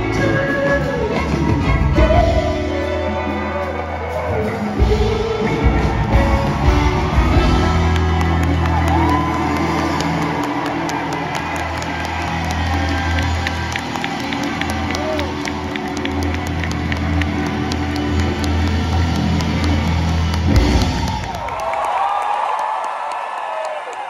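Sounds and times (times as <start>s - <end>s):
audience cheering: 0.0s - 24.0s.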